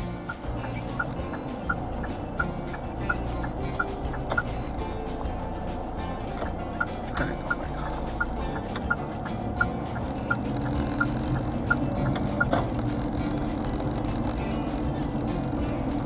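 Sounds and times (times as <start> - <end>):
background music: 0.0 - 16.0
car engine and road rumble: 0.0 - 16.0
turn signal ticking: 0.0 - 16.0.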